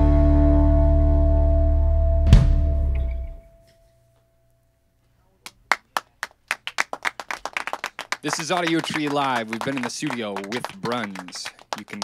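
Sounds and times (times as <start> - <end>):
people clapping: 5.4 - 12.0.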